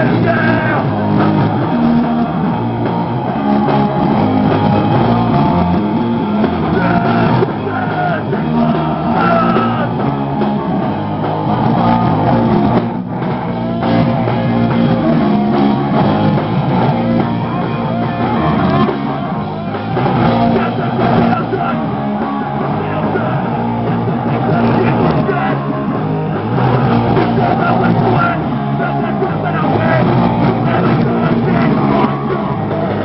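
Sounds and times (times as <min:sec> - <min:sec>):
bass guitar: 0:00.0 - 0:33.0
distorted electric guitars: 0:00.0 - 0:33.0
drum kit: 0:00.0 - 0:33.0.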